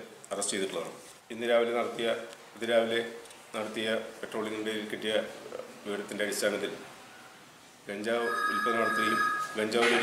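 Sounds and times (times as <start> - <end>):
man speaking: 7.9 - 10.0
electronic phone ringing: 8.2 - 10.0.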